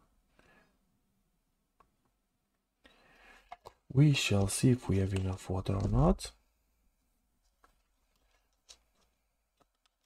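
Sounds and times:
faint plastic rustle: 7.4s - 10.0s.

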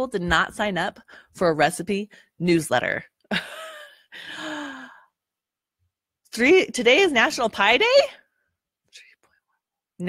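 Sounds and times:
woman speaking: 0.0s - 3.1s, 6.3s - 8.2s.

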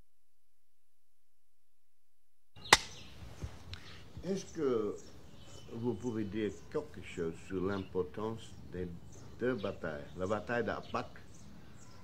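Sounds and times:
sharp click: 2.6s - 3.0s
faint background sound: 2.6s - 12.0s.

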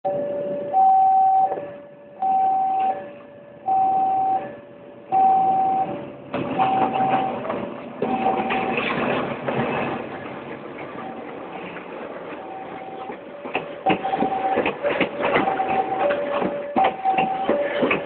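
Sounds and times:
diesel train rumble: 0.0s - 18.0s
two-tone electronic warning signal: 0.1s - 9.0s, 12.4s - 13.2s, 13.9s - 18.0s.

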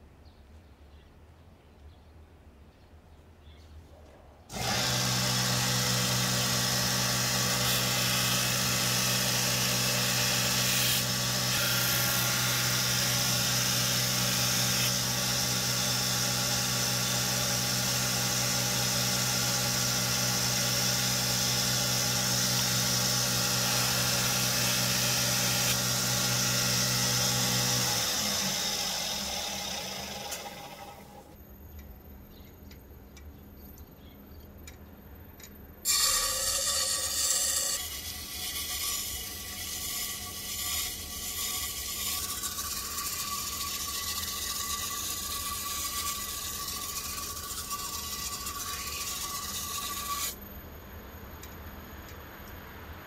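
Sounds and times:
belt grinder motor humming: 4.5s - 31.4s, 35.9s - 50.5s.

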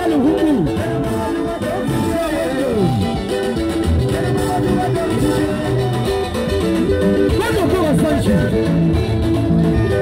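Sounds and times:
plucked guitar lines: 0.0s - 10.0s.

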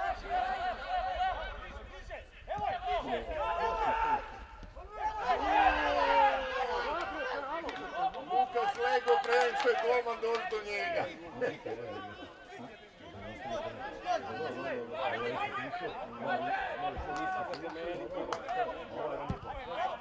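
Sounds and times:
men talking and calling out: 0.0s - 20.0s.

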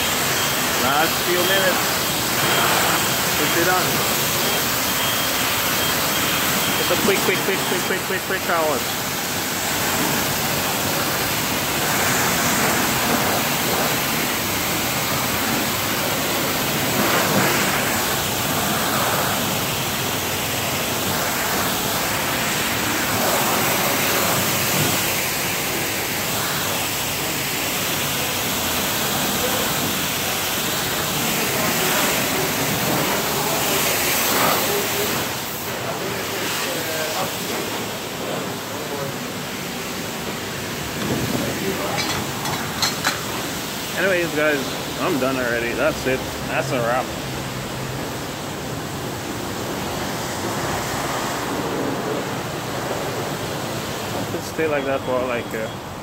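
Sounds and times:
high-pressure water spraying: 0.0s - 56.0s.

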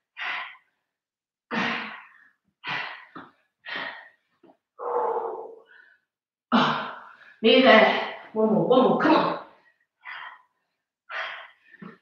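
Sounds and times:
woman breathing hard: 0.0s - 0.8s, 1.5s - 7.4s, 9.7s - 12.0s.

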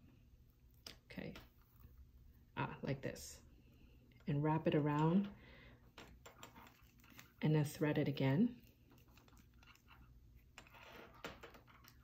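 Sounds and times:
cord rustling through strap: 6.0s - 7.4s, 8.6s - 12.0s.

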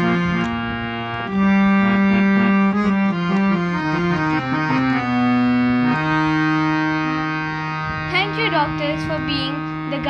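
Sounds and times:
harmonium sustained chord: 0.0s - 10.0s.

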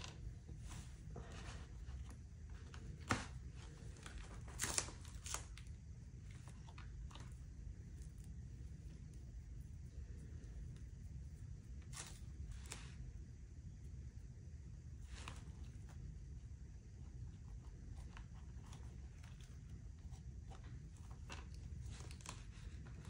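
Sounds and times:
low steady hum: 0.0s - 23.0s.

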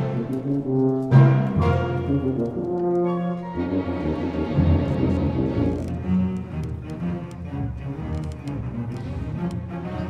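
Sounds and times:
tuba playing held notes: 0.0s - 6.0s
orchestra playing: 0.0s - 10.0s.

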